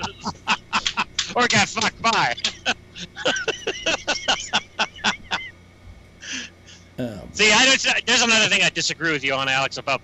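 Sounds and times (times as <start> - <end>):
man laughing: 0.0 - 1.3, 2.4 - 5.5.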